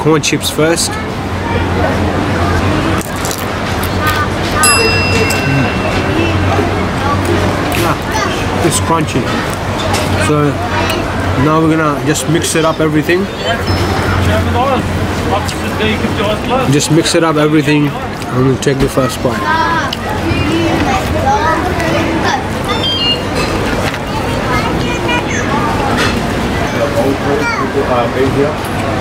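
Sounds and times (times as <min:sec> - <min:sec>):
people talking: 0:00.0 - 0:09.4
tortilla chip crunching: 0:03.0 - 0:04.2.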